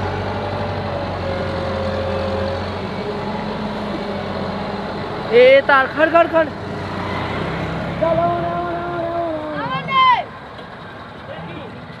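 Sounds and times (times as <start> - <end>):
tractor diesel engine rumble: 0.0 - 12.0
onlookers shouting: 7.0 - 10.4.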